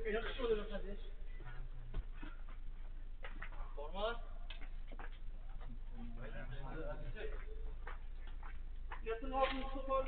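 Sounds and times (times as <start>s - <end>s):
low mains hum: 0.0s - 10.0s.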